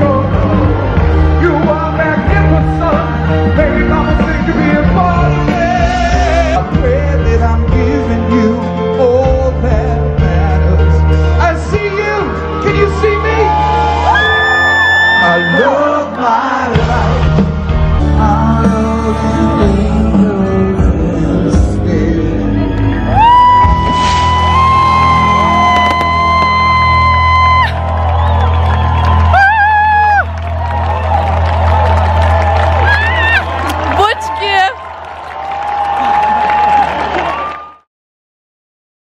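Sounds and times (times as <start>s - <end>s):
crowd cheering: 0.0s - 7.5s, 11.1s - 19.0s, 21.9s - 37.9s
live band playing: 0.0s - 34.8s.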